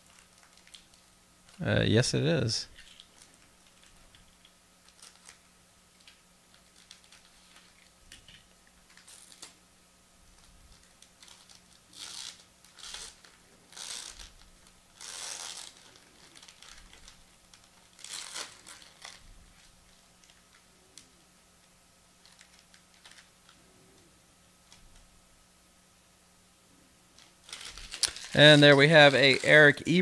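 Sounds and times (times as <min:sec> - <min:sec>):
foil wrapper crinkling: 0:00.0 - 0:01.7, 0:02.7 - 0:09.6, 0:10.2 - 0:21.2, 0:22.2 - 0:24.1, 0:27.1 - 0:30.0.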